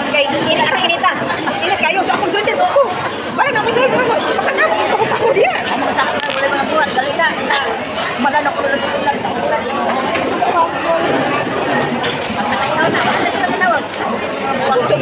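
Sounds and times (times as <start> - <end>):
chatter of voices: 0.0 - 15.0.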